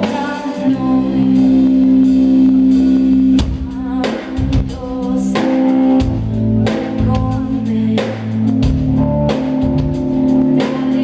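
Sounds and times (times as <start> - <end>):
woman singing: 0.0 - 2.2, 3.4 - 8.9, 10.3 - 11.0
bass guitar: 0.0 - 11.0
keyboards: 0.0 - 11.0.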